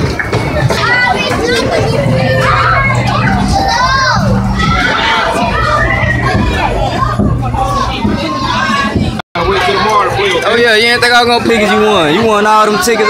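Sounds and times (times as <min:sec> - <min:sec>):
children shouting and playing: 0:00.0 - 0:13.0
steady low hum: 0:00.9 - 0:10.4.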